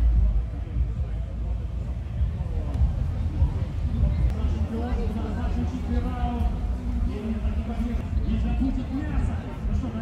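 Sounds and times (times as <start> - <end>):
constant low rumble: 0.0 - 10.0.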